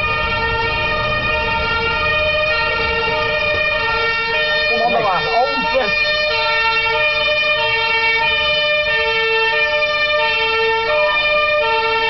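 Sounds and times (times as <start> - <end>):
loud two-tone siren: 0.0 - 12.0.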